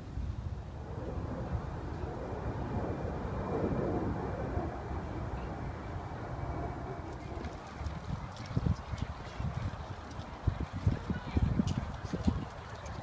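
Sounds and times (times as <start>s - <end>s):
distant traffic noise: 0.0s - 13.0s
steady low rumble: 0.0s - 13.0s.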